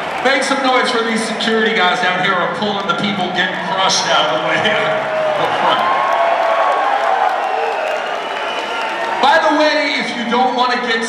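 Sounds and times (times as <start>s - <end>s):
crowd cheering and applauding: 0.0s - 11.0s.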